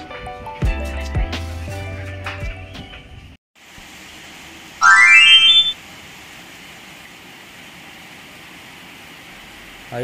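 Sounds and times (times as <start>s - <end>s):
rising electronic tone: 4.8s - 5.8s.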